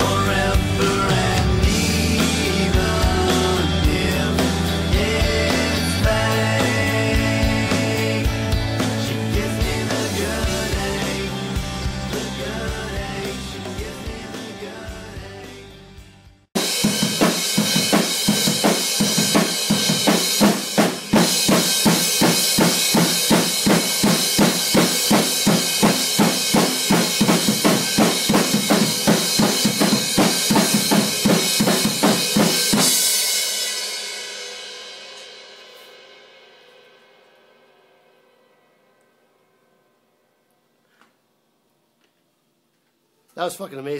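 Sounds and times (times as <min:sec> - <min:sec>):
drum kit fast beat: 0:00.0 - 0:35.0.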